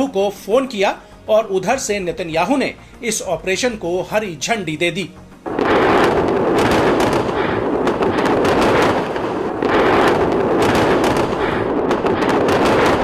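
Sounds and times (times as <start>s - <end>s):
crackling bangs and pops: 5.3s - 13.0s.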